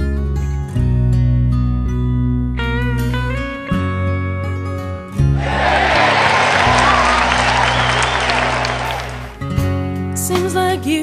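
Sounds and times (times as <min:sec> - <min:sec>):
crowd applauding and cheering: 0:05.4 - 0:09.4.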